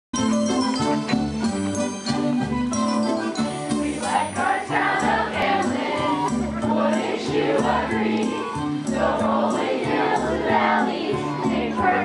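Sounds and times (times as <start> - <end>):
instrumental accompaniment: 0.2 - 12.0
group of young voices singing: 3.8 - 12.0.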